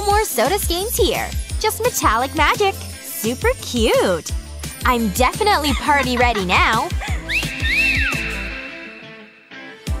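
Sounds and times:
background music: 0:00.0 - 0:10.0
wolf whistle: 0:07.2 - 0:09.4.

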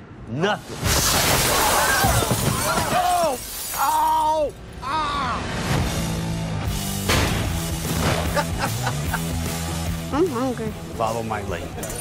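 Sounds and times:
glass window shattering: 0:00.8 - 0:04.5
glass shards tinkling: 0:02.6 - 0:04.5.

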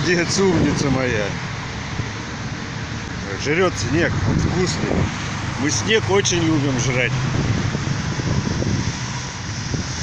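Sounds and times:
low hum of road traffic: 0:00.0 - 0:10.0
wind rumbling on microphone: 0:00.0 - 0:10.0.

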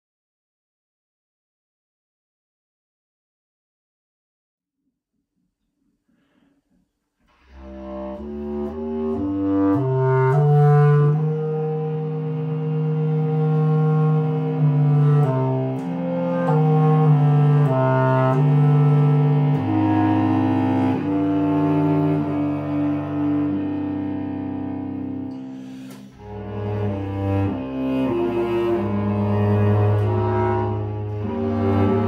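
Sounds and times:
bass clarinet: 0:07.3 - 0:32.0
bowed cello: 0:07.3 - 0:32.0.

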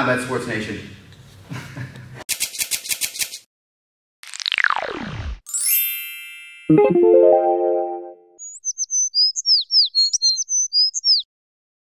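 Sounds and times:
ringing music chord: 0:06.1 - 0:08.3
bird chirping: 0:08.4 - 0:11.3.

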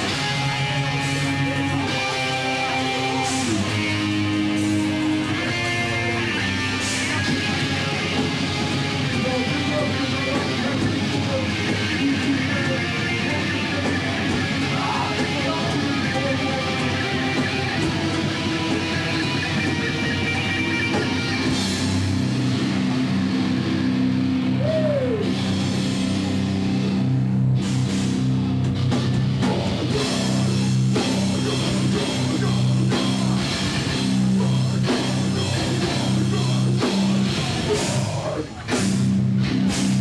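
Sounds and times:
heavy rock band playing: 0:00.0 - 0:40.0.

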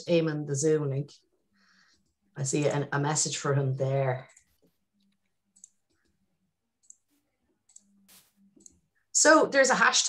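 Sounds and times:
computer mouse clicks: 0:04.3 - 0:06.2, 0:06.8 - 0:08.8.

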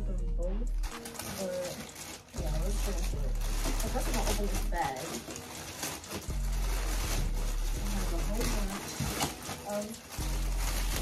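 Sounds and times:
plastic bag crinkling: 0:00.7 - 0:11.0.

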